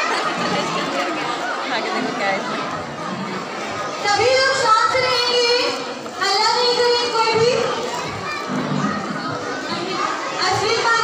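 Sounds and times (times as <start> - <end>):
children calling out: 0.0 - 11.0
crowd chatter: 0.0 - 11.0.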